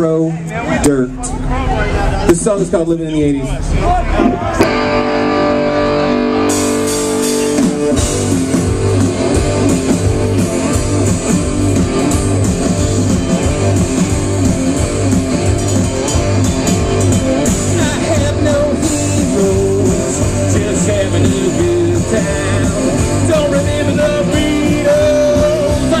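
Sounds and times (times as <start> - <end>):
punk rock band playing live: 3.6 - 26.0
electric guitar chord ringing: 4.6 - 26.0.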